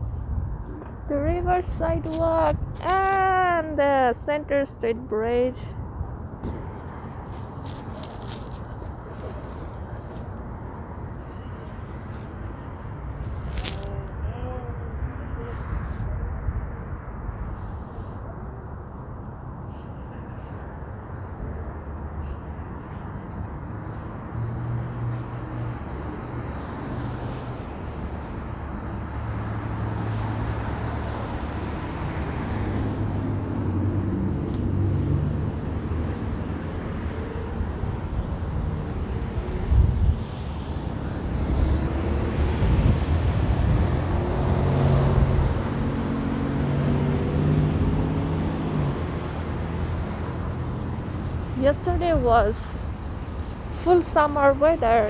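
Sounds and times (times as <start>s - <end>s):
cars passing on wet road: 6.8s - 11.0s, 23.8s - 37.5s, 38.6s - 55.0s.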